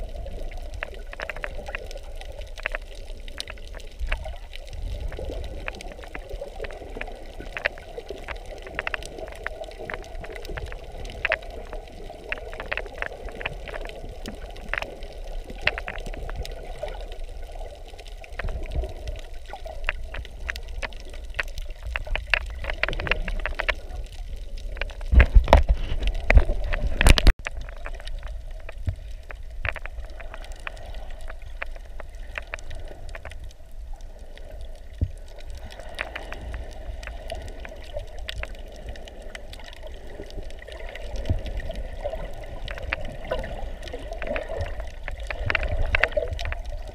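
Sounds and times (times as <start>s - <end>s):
sharp crackles and clicks: 0.0s - 46.9s
underwater rush of moving water: 0.0s - 46.9s.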